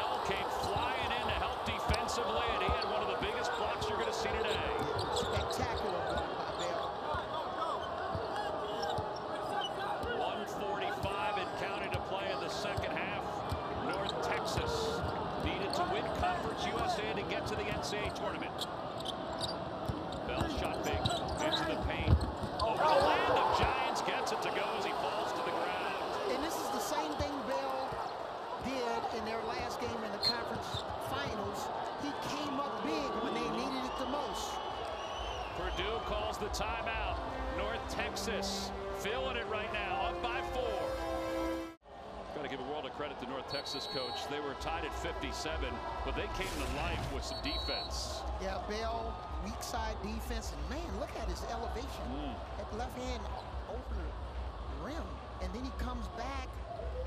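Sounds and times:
crowd shouting and cheering: 0:00.0 - 0:57.0
sneakers squeaking: 0:01.8 - 0:10.1, 0:17.7 - 0:23.7, 0:29.7 - 0:31.4
players calling out: 0:20.1 - 0:34.7.

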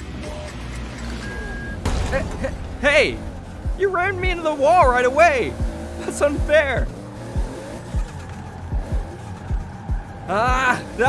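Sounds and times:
game engine hum: 0:00.0 - 0:11.0
video game background music: 0:00.0 - 0:11.0
held beep: 0:01.2 - 0:01.9
car crashing into wall: 0:01.8 - 0:03.2.

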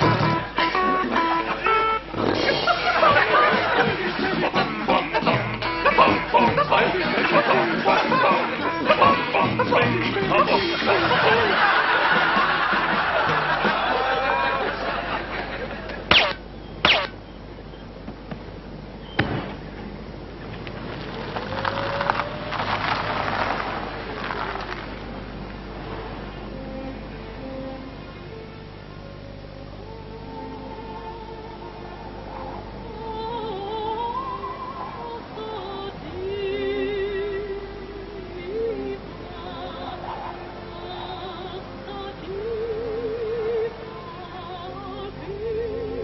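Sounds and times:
live band playing: 0:00.0 - 0:03.8
faint car engine: 0:20.3 - 0:26.9
tyres crunching on concrete: 0:20.6 - 0:25.1.

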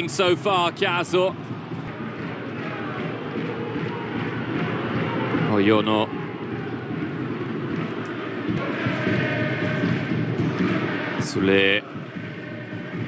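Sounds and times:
stadium crowd noise: 0:00.0 - 0:13.0.

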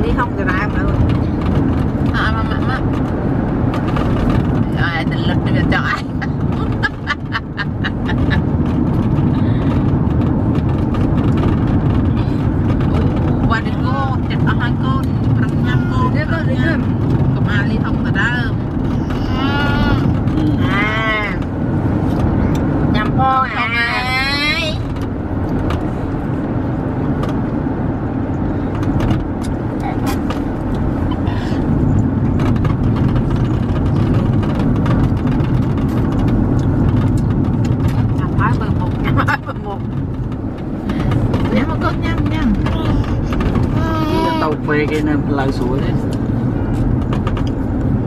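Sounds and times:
car cabin rumble: 0:00.0 - 0:48.0
baby squealing: 0:18.9 - 0:20.2, 0:42.9 - 0:44.6.

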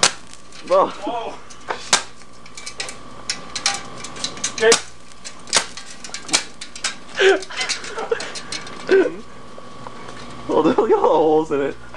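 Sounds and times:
electrical arcing snaps and crackles: 0:00.0 - 0:11.8.

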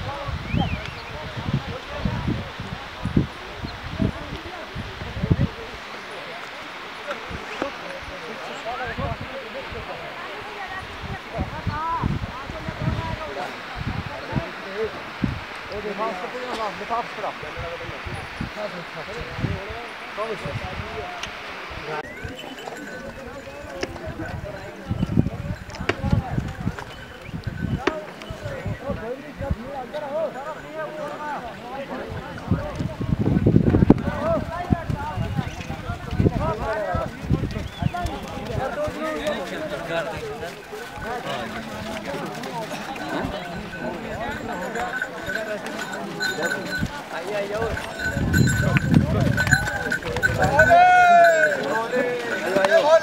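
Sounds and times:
people talking in background: 0:00.0 - 0:53.0
hooves clip-clopping on rocks: 0:04.1 - 0:17.3, 0:22.0 - 0:53.0.

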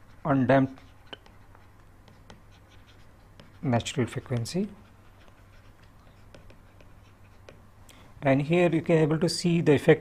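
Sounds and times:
stylus scratching on tablet: 0:00.0 - 0:07.8.

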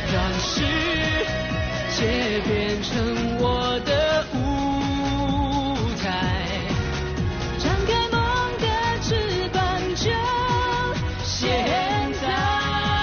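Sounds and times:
full band backing: 0:00.0 - 0:13.0
man singing pop song: 0:00.0 - 0:13.0.

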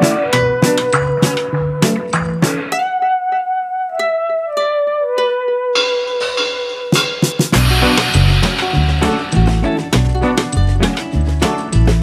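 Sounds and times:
plucked-string melody: 0:00.0 - 0:11.1
held note stepping down: 0:05.8 - 0:10.6.

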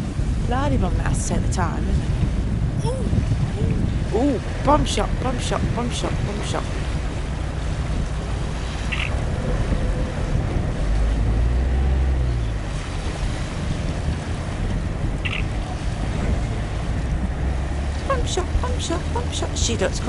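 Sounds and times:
waterfront background: 0:00.0 - 0:20.0
wind rumbling on microphone: 0:00.0 - 0:20.0.

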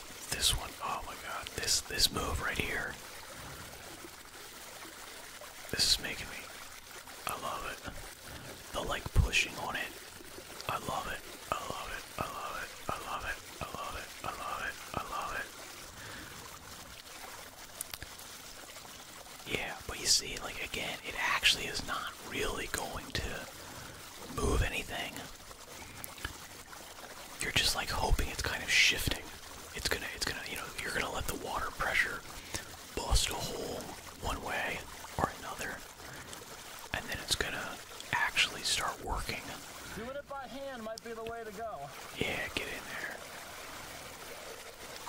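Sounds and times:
man whispering: 0:00.0 - 0:03.0, 0:05.7 - 0:06.6, 0:07.2 - 0:10.0, 0:10.7 - 0:16.2, 0:19.4 - 0:25.4, 0:27.4 - 0:40.1, 0:41.6 - 0:43.3
water flowing: 0:00.0 - 0:45.0
water gurgling through pipe: 0:00.0 - 0:45.0.

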